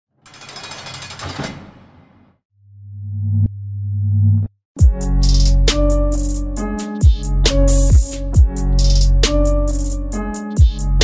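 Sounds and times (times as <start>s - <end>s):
rapid rattling burst: 0.2s - 1.6s.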